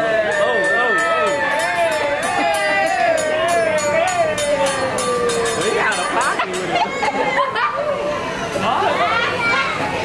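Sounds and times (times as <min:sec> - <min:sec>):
excited chatter of diners: 0:00.0 - 0:10.0
children's voices: 0:06.0 - 0:10.0.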